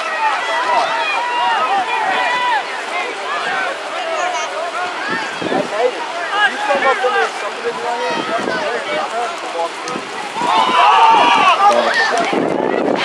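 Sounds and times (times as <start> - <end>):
people talking at once: 0.0 - 13.0.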